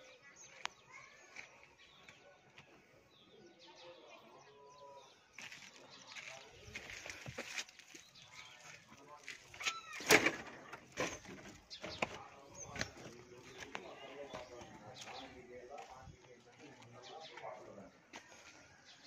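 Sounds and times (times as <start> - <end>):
distant voices talking: 0.0 - 19.0.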